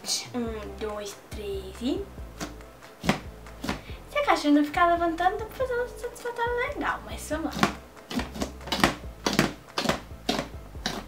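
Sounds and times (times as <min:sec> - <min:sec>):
wet squishing of slime: 0:07.4 - 0:11.0.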